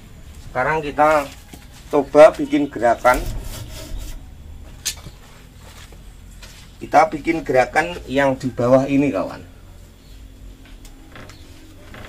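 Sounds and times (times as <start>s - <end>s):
low rumble: 2.9s - 6.8s.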